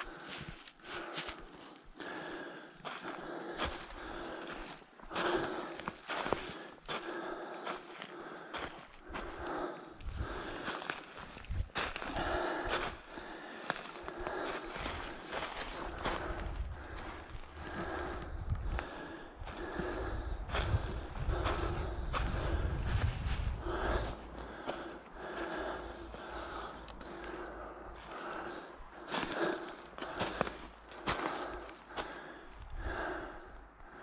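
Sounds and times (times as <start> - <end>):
person breathing hard: 0.0 - 34.0
footsteps on dry leaves: 2.8 - 9.6, 10.2 - 18.2, 28.0 - 32.1.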